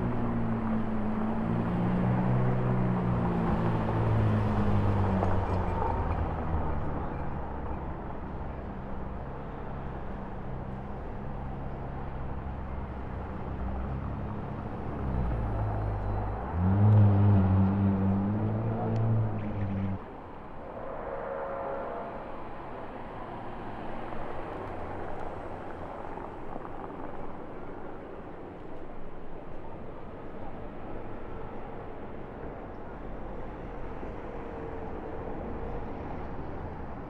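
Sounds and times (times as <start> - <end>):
car engines in street traffic: 0.0 - 37.0.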